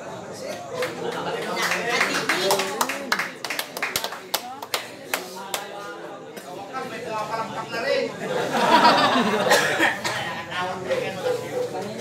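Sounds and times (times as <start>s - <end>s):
hand claps from crowd: 0.8s - 5.7s.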